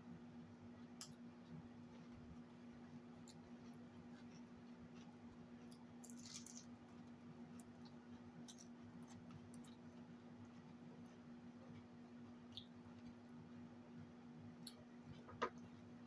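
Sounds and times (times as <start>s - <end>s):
steady low hum: 0.0s - 16.0s
chewing: 3.2s - 11.9s.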